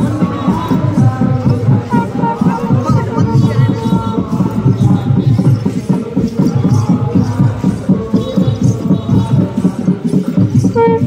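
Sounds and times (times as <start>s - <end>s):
drums beating fast rhythm: 0.0s - 11.0s
wind instrument melody: 1.8s - 4.2s, 10.6s - 11.0s.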